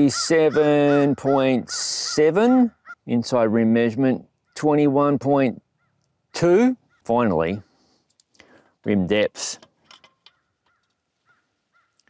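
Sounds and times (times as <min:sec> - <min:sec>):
faint bird calls: 0:05.6 - 0:07.1, 0:10.3 - 0:12.0.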